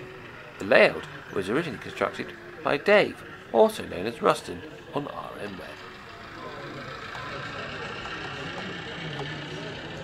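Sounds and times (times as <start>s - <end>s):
model diesel engine running: 0.0s - 10.0s.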